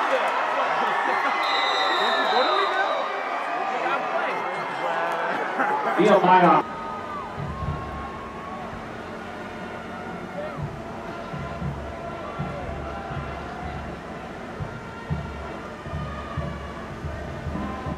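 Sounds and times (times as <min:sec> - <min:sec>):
distant crowd chatter: 0:00.0 - 0:17.9.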